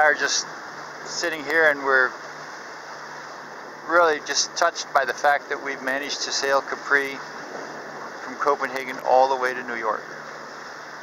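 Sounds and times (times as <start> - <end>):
man talking: 0.0 - 0.4, 1.1 - 2.1, 3.9 - 7.2, 8.2 - 10.0
water rushing past boat: 0.0 - 11.0.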